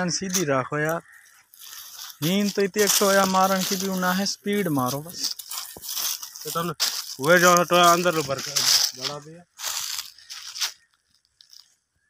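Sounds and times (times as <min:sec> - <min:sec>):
dry crunching and rustling: 0:00.3 - 0:11.9.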